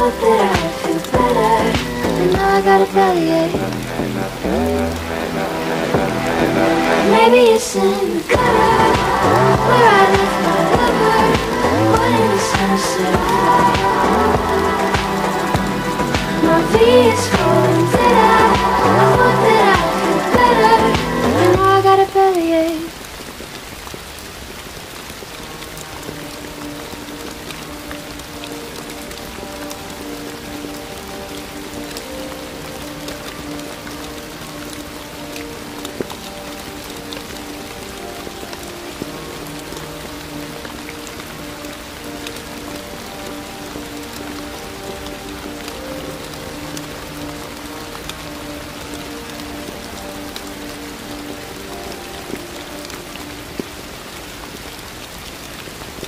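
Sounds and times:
soft slow instrumental notes: 0.0s - 22.7s, 24.6s - 56.0s
steady rain: 0.0s - 56.0s.

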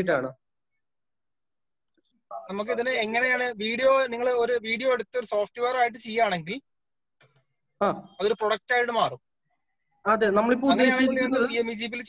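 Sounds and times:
person speaking: 10.1s - 12.0s.

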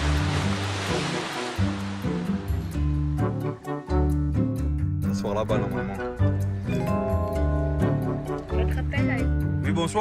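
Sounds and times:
churning water: 0.0s - 4.0s
background music: 0.0s - 10.0s.

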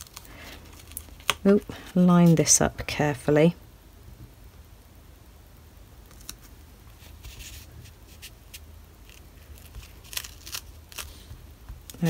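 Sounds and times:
faint rustling of tape: 0.0s - 3.0s, 6.0s - 12.0s
low steady hum: 0.0s - 12.0s.

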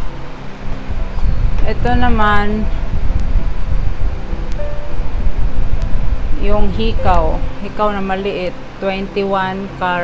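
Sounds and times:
faint background music: 0.0s - 10.0s
steady low rumble: 0.0s - 10.0s.

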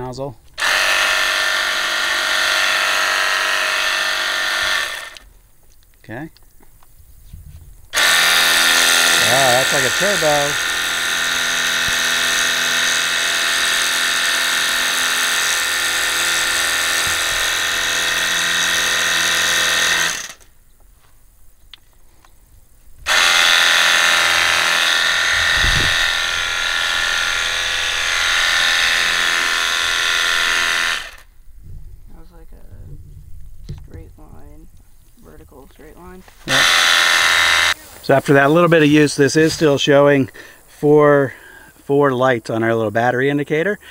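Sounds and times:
pressure washer pump whining: 0.6s - 5.3s, 7.9s - 20.5s, 23.0s - 31.3s, 36.4s - 40.5s
water jet hissing: 36.4s - 42.0s.

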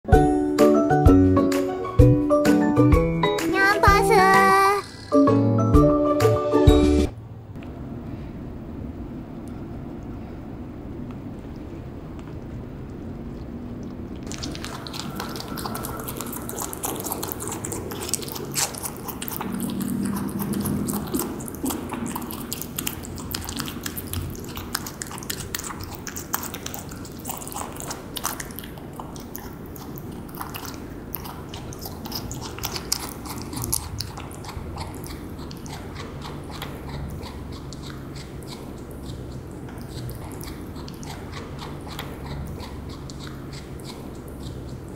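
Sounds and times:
rabbit chewing crunchy food: 11.0s - 44.9s.

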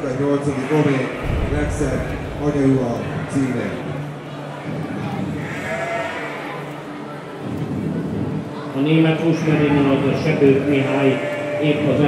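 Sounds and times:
murmur of large hall: 0.0s - 12.0s
sheep bleating: 5.4s - 6.7s, 10.8s - 12.0s.

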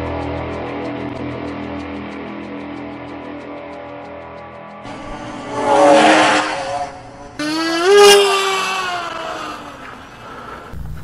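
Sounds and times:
model aircraft motor and propeller: 4.9s - 10.8s.

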